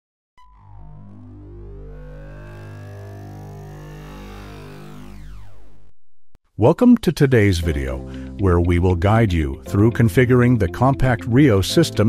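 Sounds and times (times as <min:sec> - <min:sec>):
electronic tones gliding upward: 0:00.4 - 0:05.9
low synth drone: 0:00.4 - 0:06.0.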